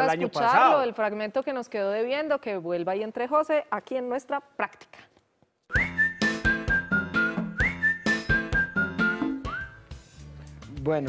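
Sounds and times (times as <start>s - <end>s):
whistled jingle melody: 5.7s - 10.2s
bouncy backing beat: 5.7s - 10.8s.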